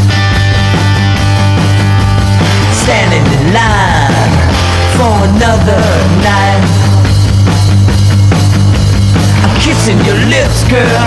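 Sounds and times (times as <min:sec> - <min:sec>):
rock band playing bass and drums: 0:00.0 - 0:11.0
person singing: 0:02.5 - 0:07.1, 0:09.3 - 0:11.0.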